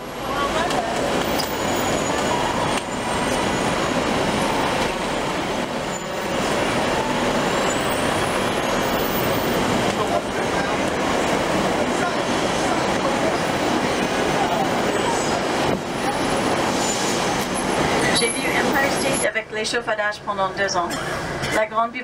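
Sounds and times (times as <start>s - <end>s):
faint voices: 0.0s - 21.9s
street traffic passing: 0.0s - 22.0s.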